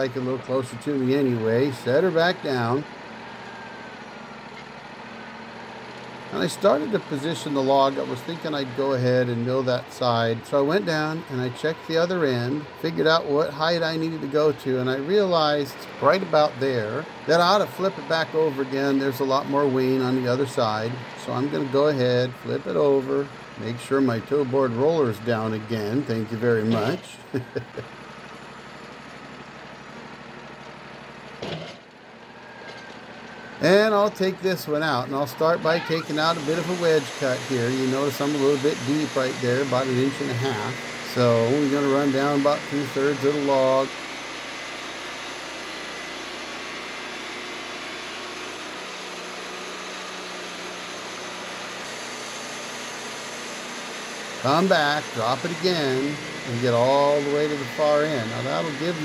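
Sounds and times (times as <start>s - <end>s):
sawmill engine idling: 0.0s - 59.0s.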